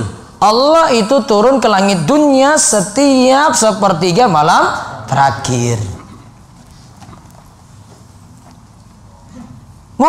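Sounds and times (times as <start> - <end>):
faint clicks and shuffles: 6.3 - 9.7.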